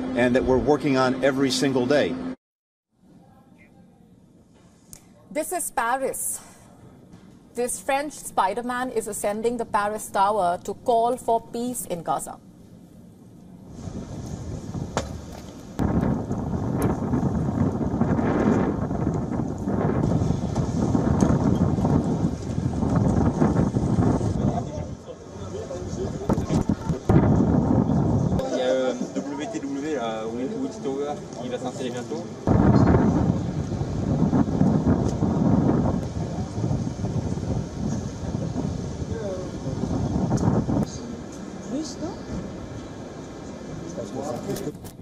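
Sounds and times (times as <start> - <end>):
wind buffeting microphone: 13.5 - 29.7, 31.5 - 45.0.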